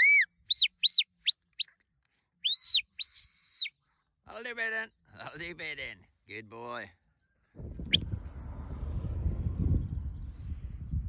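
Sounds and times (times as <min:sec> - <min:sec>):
wind rumbling on microphone: 0:07.6 - 0:11.0.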